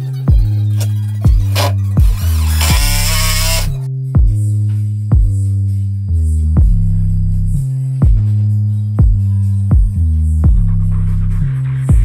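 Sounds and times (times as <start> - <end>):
electronic music with steady kick: 0.0 - 12.0
impact driver driving screw into wood: 0.8 - 3.8.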